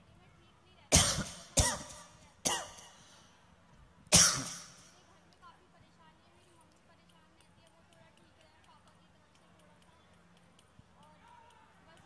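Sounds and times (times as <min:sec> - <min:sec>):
person coughing: 0:00.9 - 0:02.9, 0:04.1 - 0:04.7.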